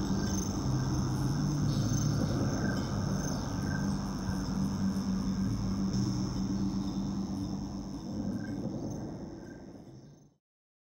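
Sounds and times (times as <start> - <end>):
crickets chirping: 0.0 - 10.4
low steady hum: 0.0 - 10.4.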